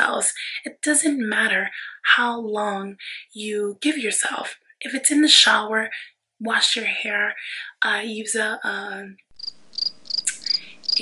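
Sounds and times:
insect chirping: 9.3 - 11.0.

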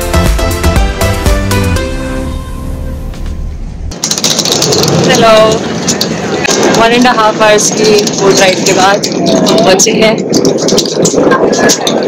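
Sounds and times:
electronic music on a held chord: 0.0 - 3.9
outdoor ambience: 0.0 - 12.0
woman's voice: 5.0 - 5.6, 6.7 - 10.2.

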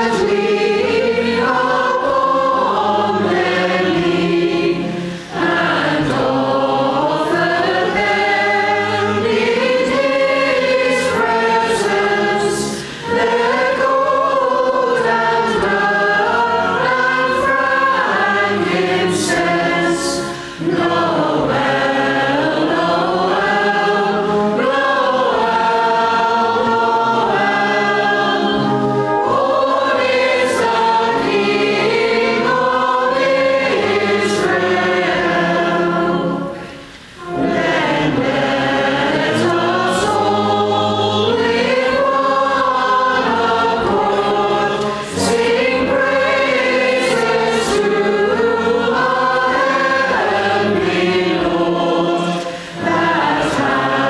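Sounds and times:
choir and congregation singing: 0.0 - 54.0.

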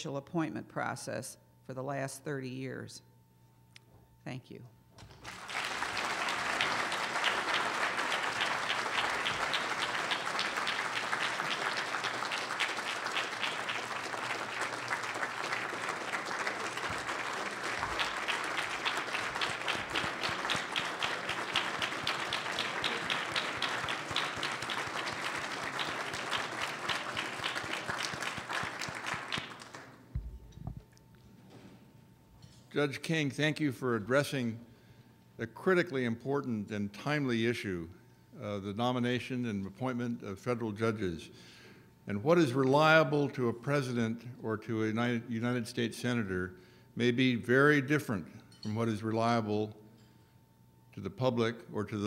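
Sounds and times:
large audience applauding: 5.1 - 30.1.

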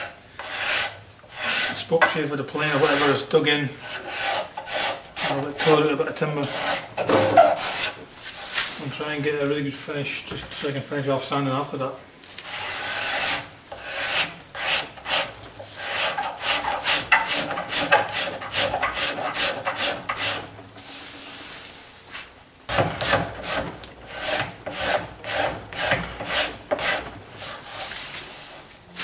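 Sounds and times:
hand scraper scraping wood: 0.0 - 9.1, 12.3 - 20.5, 22.7 - 28.4.

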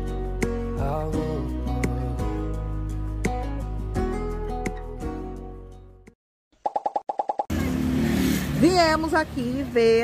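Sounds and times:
street traffic: 6.7 - 10.0.

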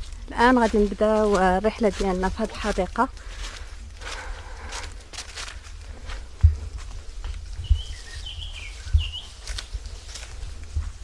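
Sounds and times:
footsteps on leaves: 0.0 - 11.0
bird chirping: 7.6 - 9.8.

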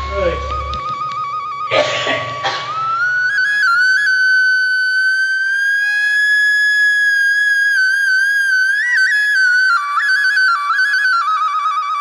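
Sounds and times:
backing-track accompaniment: 0.0 - 7.0
high flute note: 0.0 - 12.0.

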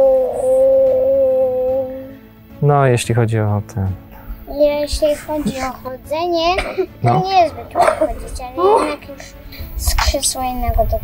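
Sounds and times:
high-pitched vocal cry: 0.0 - 2.2.

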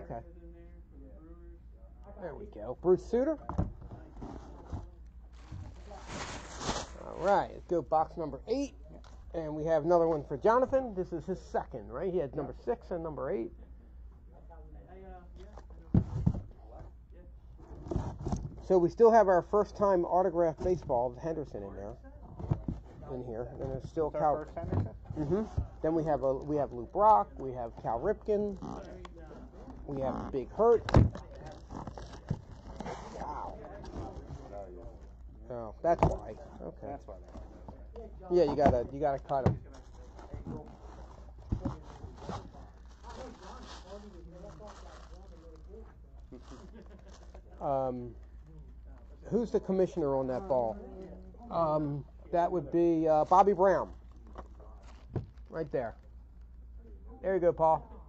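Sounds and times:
quiet talk: 0.0 - 58.0.

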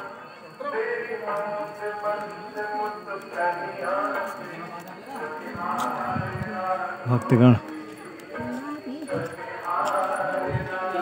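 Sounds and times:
distant voices singing held notes: 0.0 - 11.0.

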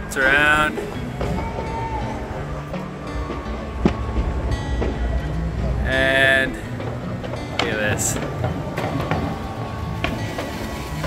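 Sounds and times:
steady low rumble: 0.0 - 10.9.

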